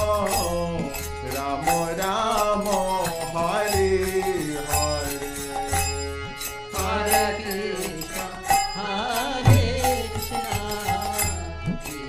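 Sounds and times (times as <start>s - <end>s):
person singing ornamented melody: 0.0s - 6.0s, 6.7s - 12.0s
harmonium chords: 0.0s - 12.0s.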